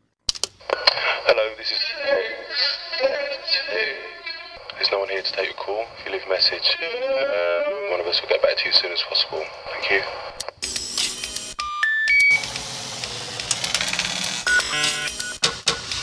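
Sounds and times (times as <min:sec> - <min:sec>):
person speaking: 0:00.6 - 0:10.4
noisy clicking electronic texture: 0:10.4 - 0:16.0.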